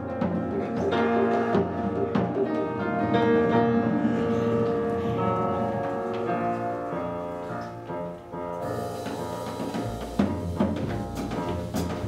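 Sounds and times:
drums: 0.0 - 12.0
piano: 0.0 - 12.0
upright bass: 8.8 - 12.0.

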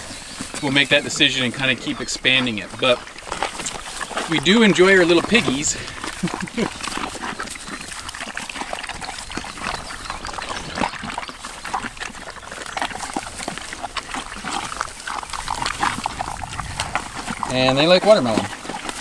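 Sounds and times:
pigs chewing wetly: 0.0 - 19.0.

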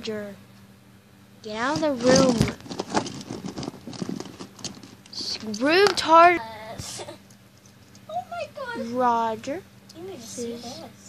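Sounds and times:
plastic figures clicking and rattling: 1.6 - 6.0.

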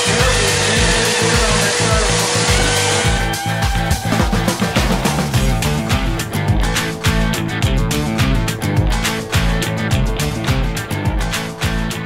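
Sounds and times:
handheld power tool whirring: 0.0 - 4.1
rock music: 0.0 - 12.0.

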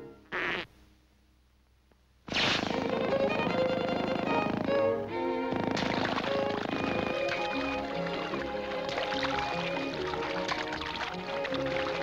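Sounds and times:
orchestral cartoon music with strings: 2.7 - 12.0.

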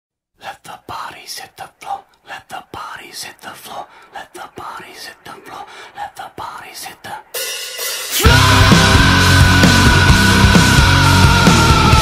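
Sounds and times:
person whispering: 0.4 - 7.4.

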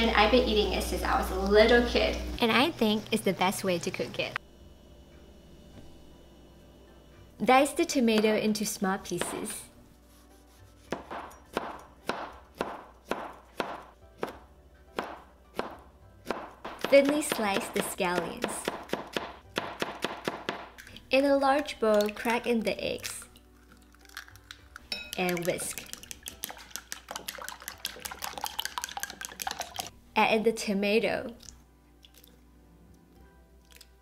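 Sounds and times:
cleaver chopping on plastic board: 10.9 - 14.4, 15.0 - 20.7
beaten egg sloshing: 20.7 - 29.9, 31.3 - 32.4.

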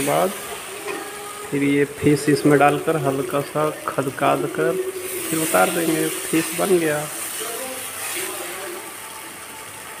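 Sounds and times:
paste frying with hiss: 0.0 - 10.0.

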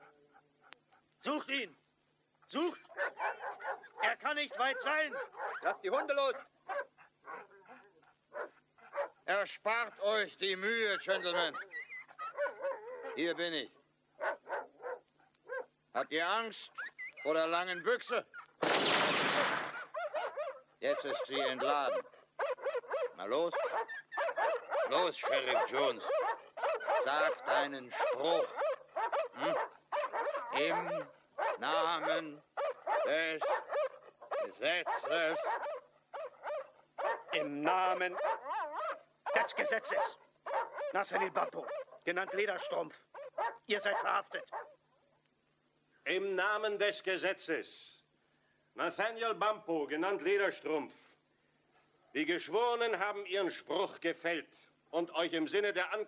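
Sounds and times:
dogs barking: 0.0 - 1.9, 2.5 - 15.9, 19.6 - 45.2.

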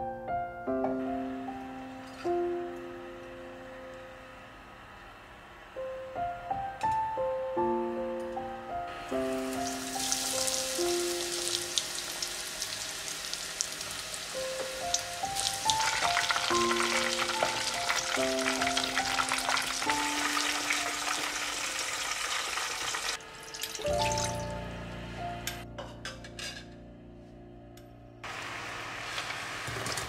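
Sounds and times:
soft background music: 0.0 - 12.9, 13.9 - 22.0, 23.5 - 28.3
chicken deep-frying in oil: 9.5 - 24.5, 28.3 - 30.0.

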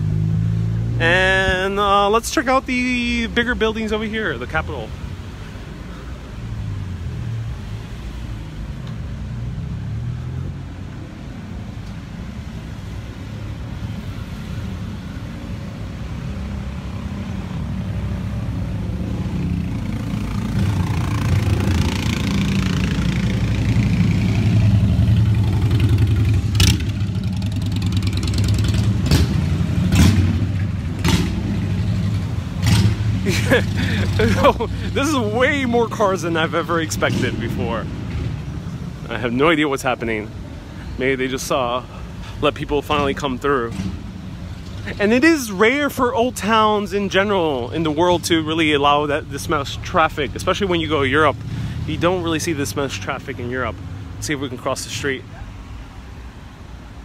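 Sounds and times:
cars idling and creeping past: 0.0 - 57.0
motor scooter passing: 19.3 - 35.6.

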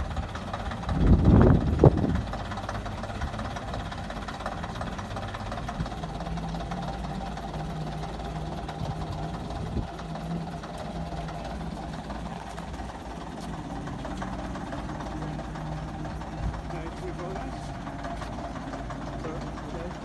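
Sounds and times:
diesel bus engine running: 0.0 - 20.0.

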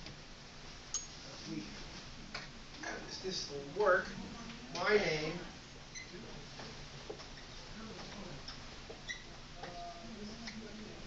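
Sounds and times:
faint murmur of voices: 1.2 - 11.0.

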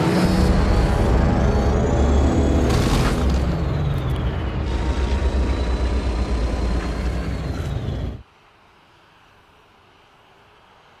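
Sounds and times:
deep engine roar: 0.0 - 8.2
falling whine: 0.0 - 8.3.

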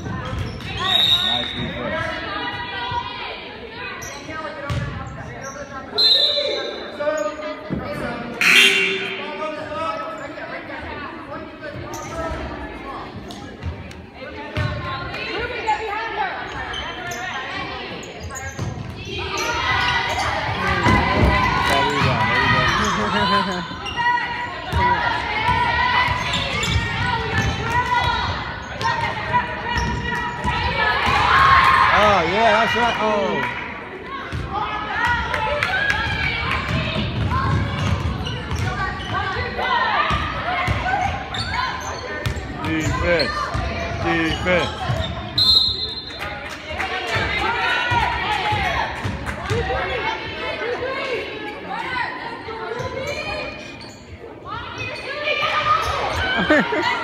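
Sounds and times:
basketball bouncing on court: 0.0 - 0.8, 4.6 - 5.2, 14.5 - 14.9, 24.6 - 31.4, 34.2 - 35.2, 35.8 - 39.5, 40.1 - 41.2, 42.2 - 45.3
chatter and calls echoing: 0.0 - 57.0.

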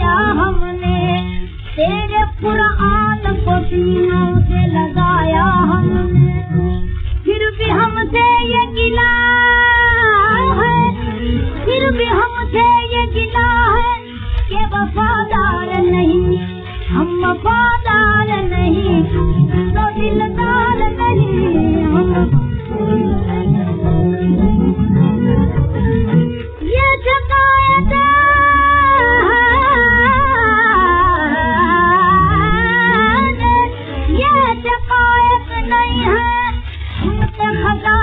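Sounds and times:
woman singing classical song: 0.0 - 24.8, 26.0 - 38.0
gramophone record crackle: 0.0 - 38.0
musical accompaniment: 0.0 - 38.0.

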